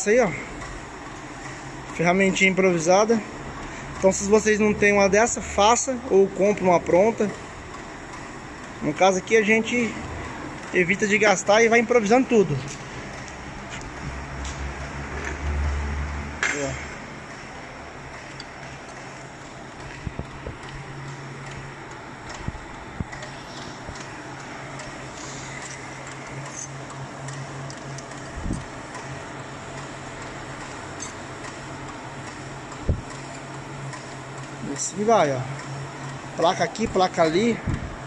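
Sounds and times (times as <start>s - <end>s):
low machine hum: 0.0s - 38.0s.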